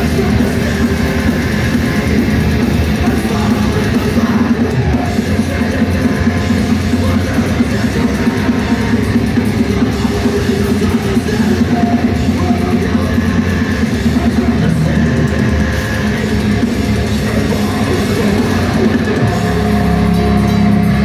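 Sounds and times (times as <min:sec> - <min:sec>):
bass: 0:00.0 - 0:21.0
drums: 0:00.0 - 0:21.0
heavy distorted guitars: 0:00.0 - 0:21.0.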